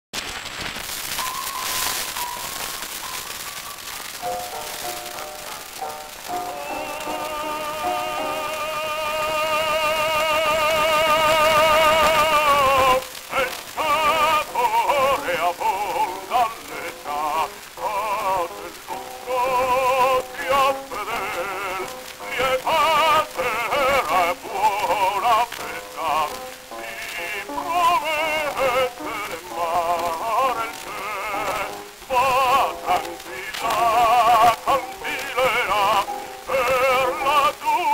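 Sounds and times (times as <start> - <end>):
record surface hiss and crackle: 0.1 - 37.9
operatic baritone singing: 4.3 - 37.9.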